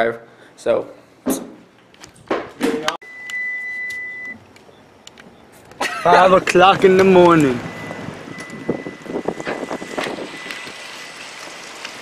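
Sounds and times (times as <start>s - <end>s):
high electronic beep: 3.0s - 4.4s, 7.5s - 10.6s.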